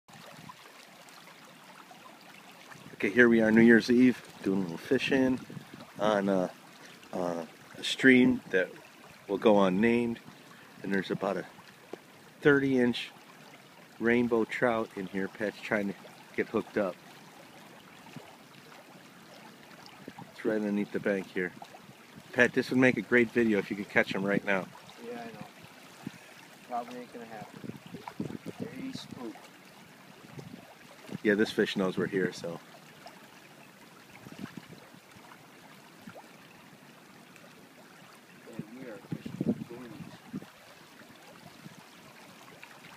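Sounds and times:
small stream flowing: 0.1s - 42.9s
person's indistinct voice: 26.7s - 27.6s, 28.5s - 29.4s.

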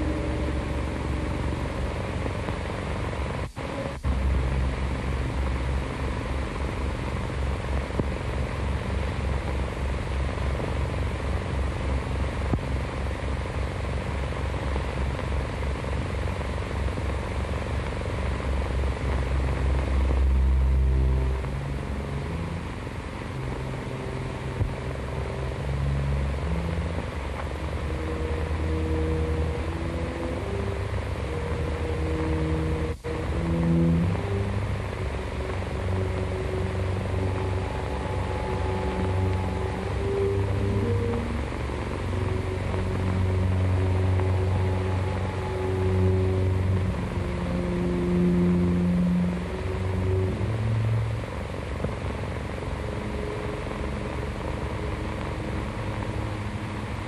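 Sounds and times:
film score low held notes: 0.0s - 57.0s
heavy hum and hiss: 0.0s - 57.0s.

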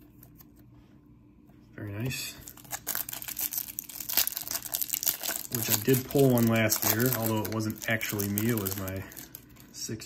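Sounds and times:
plastic wrapper crinkling: 2.3s - 10.0s
wrapper tearing: 2.4s - 9.8s.

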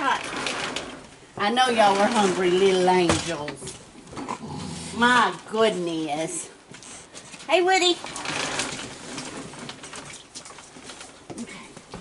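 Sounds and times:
clicks and scrabbling feet on wood: 8.1s - 12.0s.

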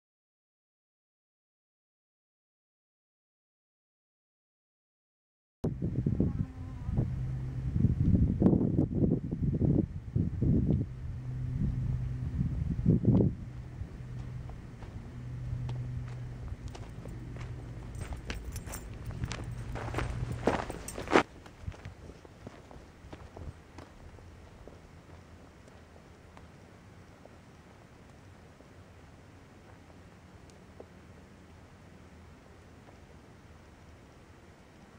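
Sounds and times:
wind rumbling on microphone: 5.6s - 25.7s
footsteps on gravelly dirt: 13.8s - 26.5s.

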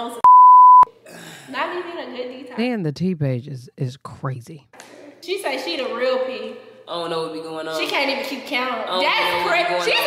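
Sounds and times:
censor bleep: 0.2s - 0.9s
person talking: 2.6s - 5.1s.

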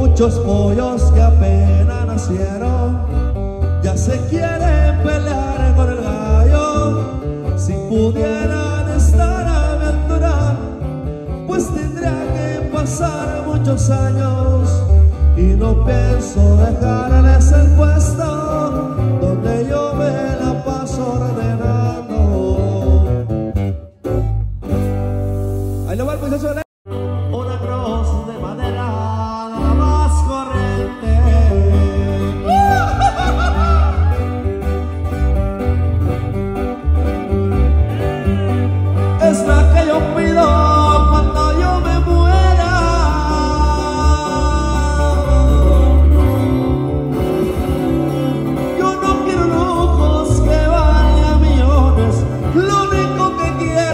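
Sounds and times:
bass guitar line: 0.0s - 53.9s
held chord over low bass: 30.6s - 52.6s
acoustic guitar picking runs: 30.7s - 53.9s.

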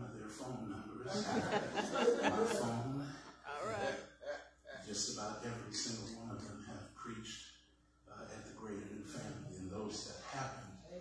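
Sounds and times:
man speaking into a microphone: 0.0s - 7.4s, 8.1s - 10.9s.

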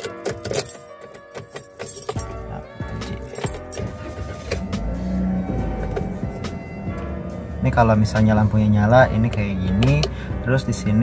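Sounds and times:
keys jangling: 0.0s - 4.7s
background music: 0.0s - 11.0s
car engine starting and idling: 2.2s - 11.0s.

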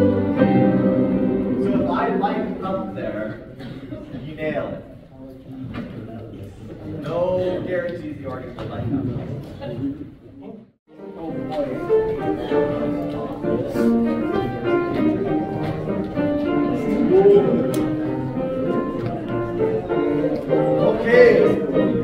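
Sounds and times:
choir singing: 0.0s - 2.6s
piano accompaniment: 0.0s - 3.6s, 10.9s - 22.0s.

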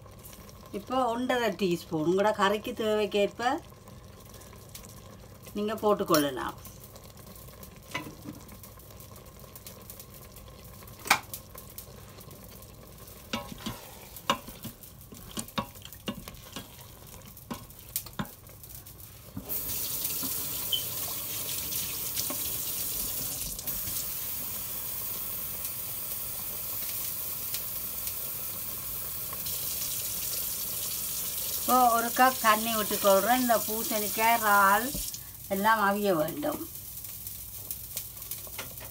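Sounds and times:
wooden spatula scraping steel pot: 13.3s - 17.7s
water tap running: 19.4s - 27.2s, 28.2s - 35.3s.

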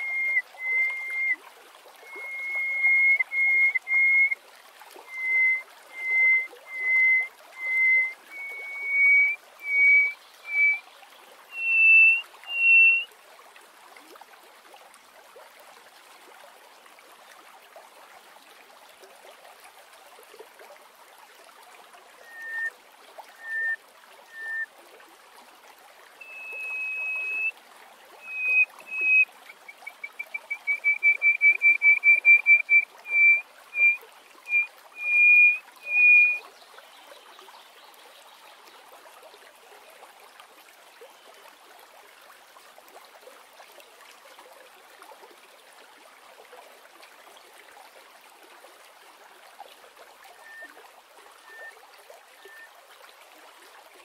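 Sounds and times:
lark singing whistled notes: 0.0s - 1.4s, 2.0s - 4.4s, 5.1s - 10.8s, 11.5s - 13.1s, 22.2s - 22.7s, 23.3s - 24.7s, 26.2s - 27.5s, 28.2s - 36.4s, 50.4s - 50.8s, 51.4s - 51.8s, 52.4s - 52.7s.

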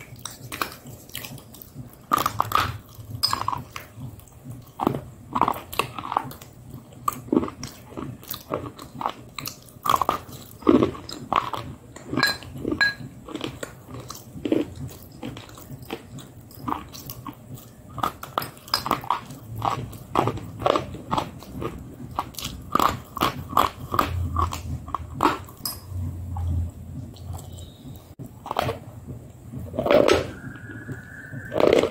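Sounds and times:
crunchy food chewing: 0.0s - 25.6s.

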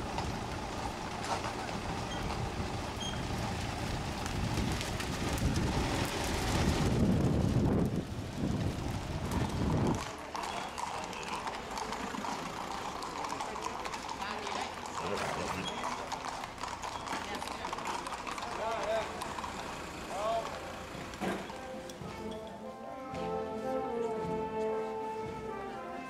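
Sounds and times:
horses hooves clip-clopping on pavement: 0.0s - 26.0s.

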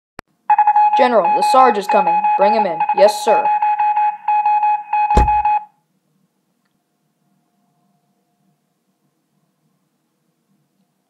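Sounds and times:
pulsing electronic alarm tone: 0.5s - 5.7s
dull thump: 5.1s - 5.6s.

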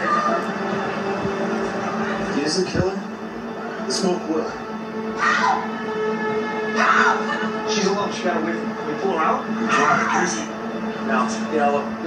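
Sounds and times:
low music drone from television: 0.0s - 12.0s.

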